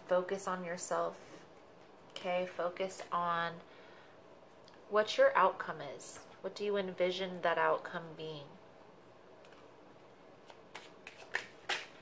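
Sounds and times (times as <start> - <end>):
cards being shuffled: 9.4 - 9.7, 10.4 - 12.0.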